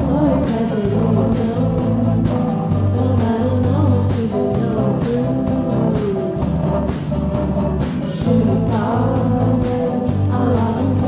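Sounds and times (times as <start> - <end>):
bass line: 0.0 - 11.0
steady beat: 0.0 - 11.0.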